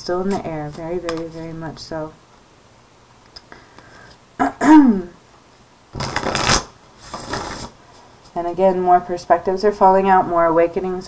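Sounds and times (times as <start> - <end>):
cards being shuffled: 0.3 - 1.5, 6.0 - 7.7.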